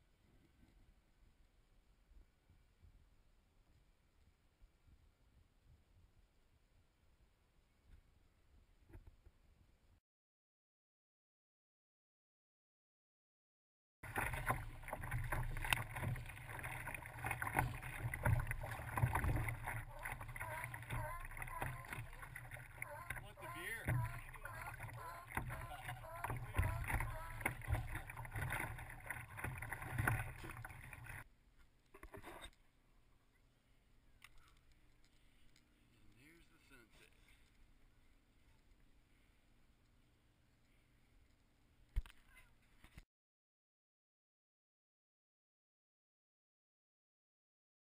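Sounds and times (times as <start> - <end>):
water sloshing against kayak hull: 14.0 - 31.2.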